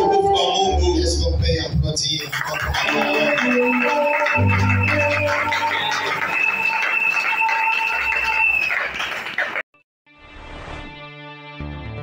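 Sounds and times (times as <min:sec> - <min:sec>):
electronic organ sustained notes: 0:02.6 - 0:08.1.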